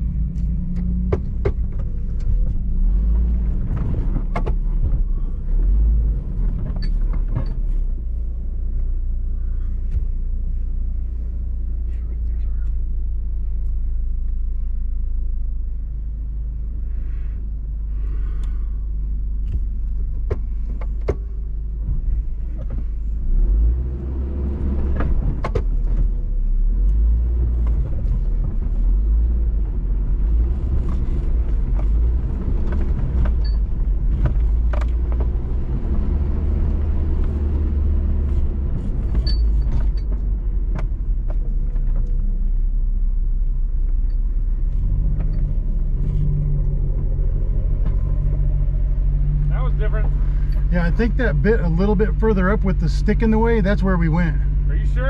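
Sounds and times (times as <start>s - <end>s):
knocks and rattles over ruts: 0.0s - 16.7s, 17.4s - 55.0s
vehicle engine rumble: 0.0s - 55.0s.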